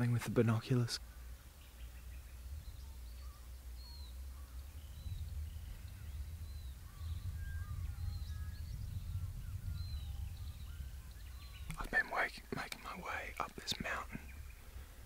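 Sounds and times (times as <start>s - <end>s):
faint bird chirps: 0.0s - 15.0s
wind rumble on microphone: 1.6s - 15.0s.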